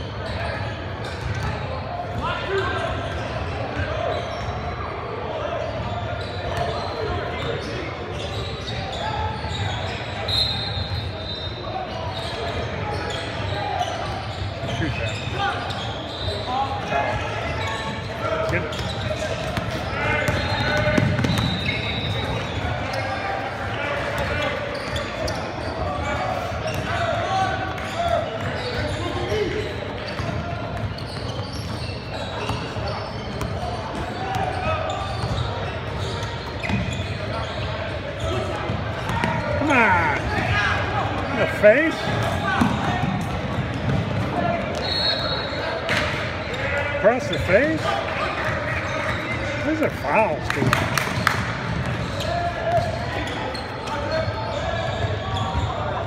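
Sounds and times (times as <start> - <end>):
echoing hubbub of voices: 0.0 - 56.0.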